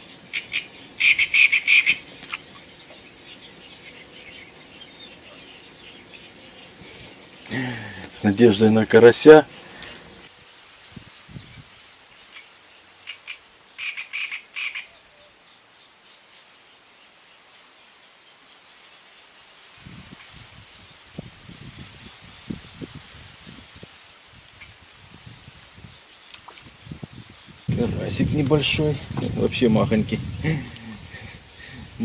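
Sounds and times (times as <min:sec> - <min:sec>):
frog croaking: 0:00.0 - 0:06.4, 0:12.3 - 0:15.0.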